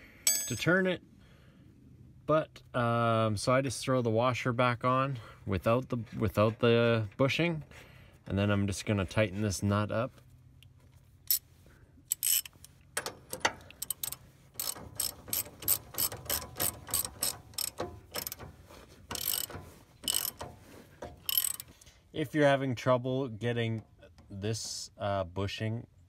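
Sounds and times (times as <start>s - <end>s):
ratchet wrench clicking: 12.1s - 18.5s, 19.1s - 21.7s.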